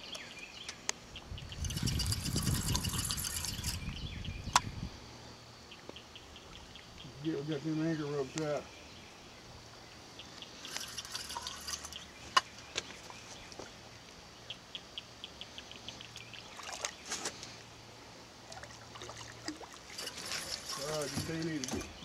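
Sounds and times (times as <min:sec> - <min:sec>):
quick run of ticks: 0:01.5 - 0:04.0
water splashing and trickling: 0:01.5 - 0:04.0, 0:10.6 - 0:14.2, 0:16.1 - 0:17.6, 0:18.4 - 0:22.0.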